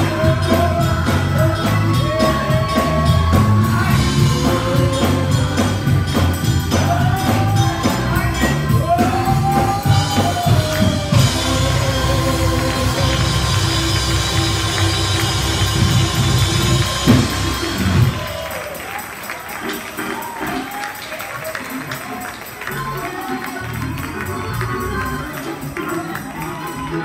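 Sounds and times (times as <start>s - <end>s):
bass: 0.0s - 19.0s, 22.6s - 27.0s
drum kit: 0.0s - 20.8s
gospel band and choir: 0.0s - 27.0s
keyboards: 0.0s - 27.0s
light rhythmic percussion: 0.0s - 27.0s.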